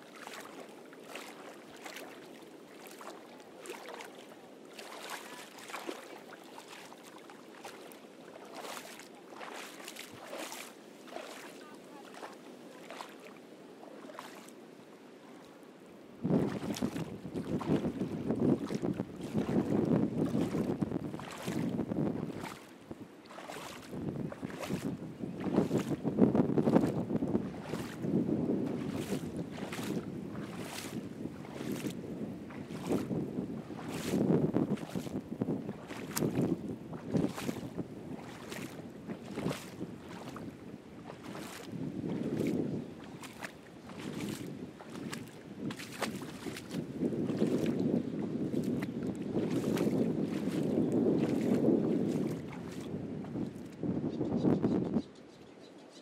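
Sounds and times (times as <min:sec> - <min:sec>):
footsteps splashing in shallow water: 0:00.0 - 0:53.9
wind buffeting microphone: 0:16.2 - 0:55.2.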